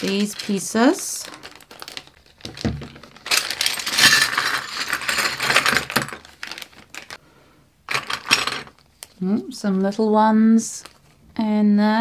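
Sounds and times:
plastic bag crinkling: 0:00.0 - 0:07.2
plastic puzzle pieces clattering: 0:00.0 - 0:07.2, 0:07.9 - 0:08.9.

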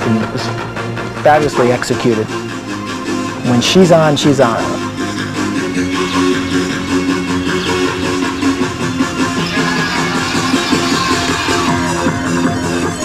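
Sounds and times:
upbeat backing music: 0:00.0 - 0:13.0.

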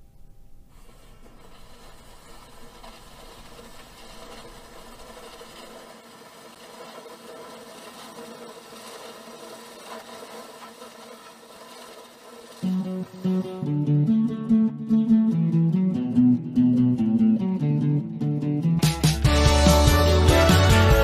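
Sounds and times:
machine whirring with rattle: 0:00.7 - 0:13.2.

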